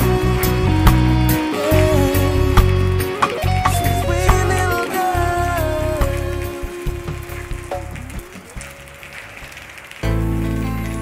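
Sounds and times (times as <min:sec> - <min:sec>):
song: 0:00.0 - 0:09.2
steady rain falling: 0:00.0 - 0:11.0.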